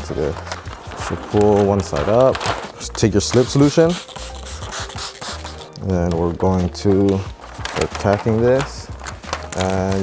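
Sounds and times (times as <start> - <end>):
background music: 0.0 - 10.0
spray bottle hissing: 3.4 - 5.7.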